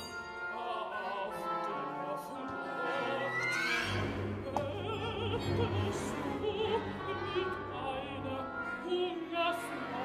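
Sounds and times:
orchestra: 0.0 - 10.0
woman singing opera aria: 4.4 - 10.0.

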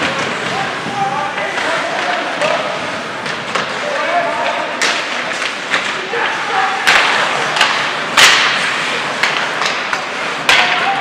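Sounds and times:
hockey sticks and puck clacking: 0.0 - 11.0.

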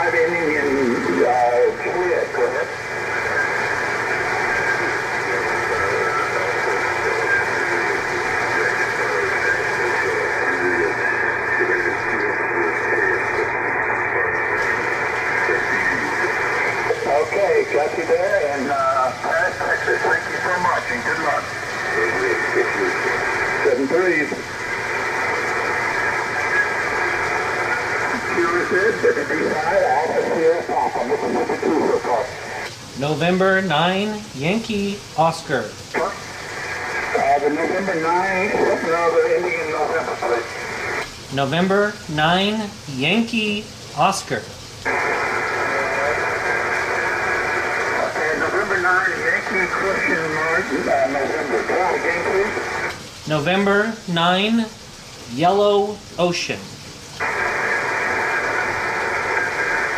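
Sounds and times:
faint garbled radio voices: 0.0 - 59.9
radio band hiss and static: 0.0 - 59.9.

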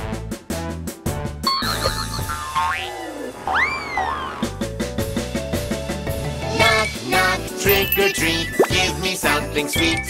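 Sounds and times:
background music: 0.0 - 10.0
cartoon boing effects: 1.9 - 3.7.

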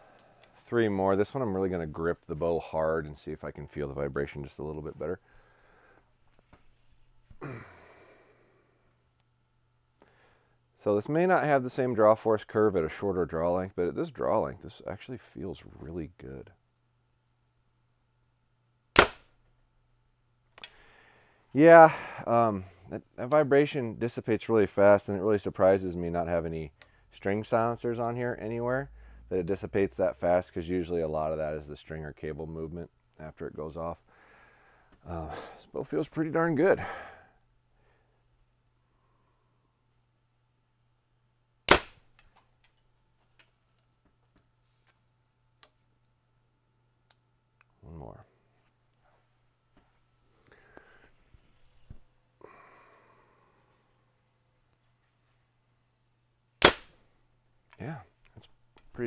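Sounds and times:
bow string snap: 19.0 - 19.3, 41.7 - 42.3, 56.6 - 57.0.

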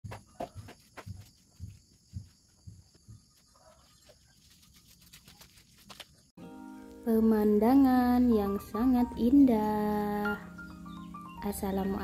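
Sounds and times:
footsteps on dry leaves: 3.3 - 6.3.

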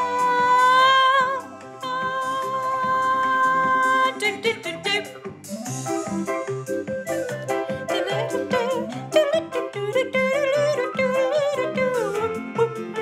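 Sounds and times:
person singing long notes: 0.0 - 4.3, 7.7 - 13.0.

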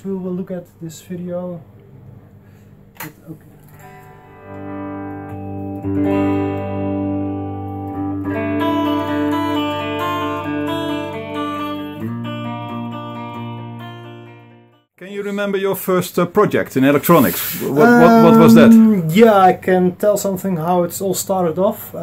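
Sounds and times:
electric guitar chords ringing: 3.8 - 14.8, 17.8 - 19.1.

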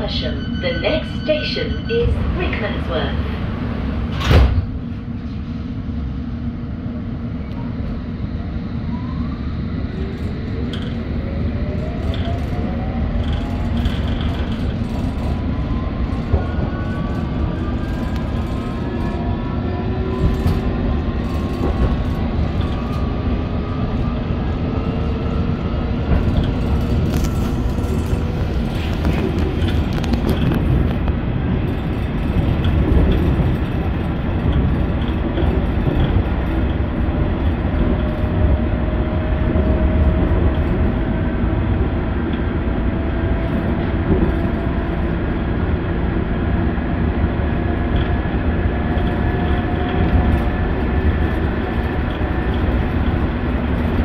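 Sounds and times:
wheel and rail rumble: 0.0 - 54.0.

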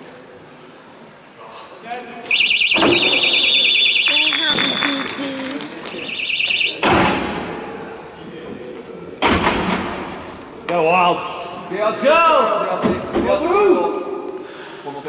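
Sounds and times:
referee whistle trilling blasts: 2.3 - 6.9
voices calling out: 2.3 - 7.1.

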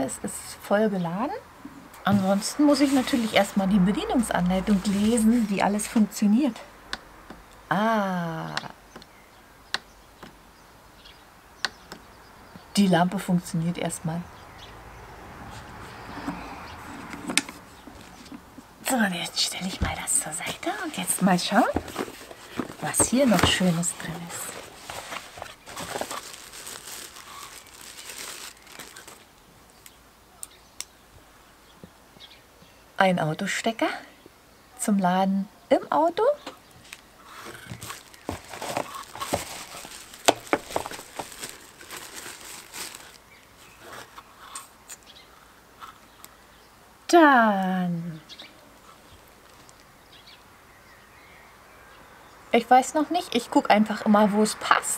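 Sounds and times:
paper and plastic rustling: 2.1 - 6.1, 19.5 - 29.4, 36.8 - 45.0
handling noise: 15.5 - 29.4, 36.8 - 44.2.

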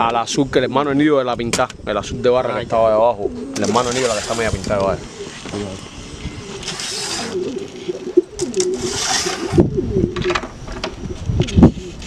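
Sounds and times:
pigeons cooing: 1.8 - 12.0
rustling: 3.5 - 10.3.

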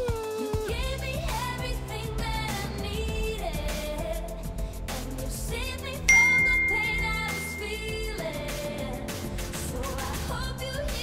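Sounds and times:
pop background music: 0.0 - 11.0
notification ding: 6.1 - 8.0.

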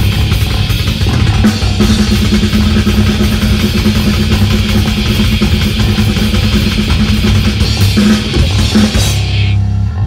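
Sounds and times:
live metal band playing: 0.0 - 10.0.

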